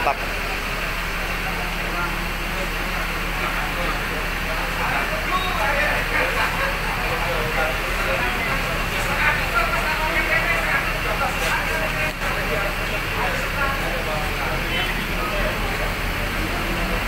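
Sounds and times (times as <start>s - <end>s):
people conversing indistinctly: 0.0s - 16.7s
bus engine idling: 0.0s - 17.0s.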